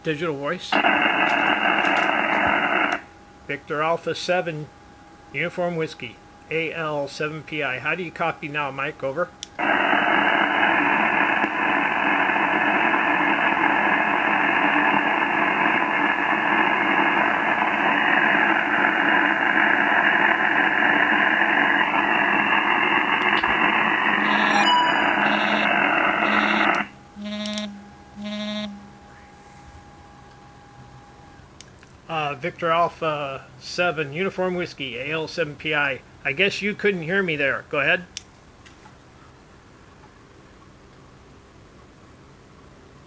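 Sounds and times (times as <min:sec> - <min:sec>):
radio static hiss: 0:00.1 - 0:04.7, 0:05.4 - 0:29.9
short electronic beeps: 0:24.2 - 0:29.2
faint steady tone: 0:24.2 - 0:31.4.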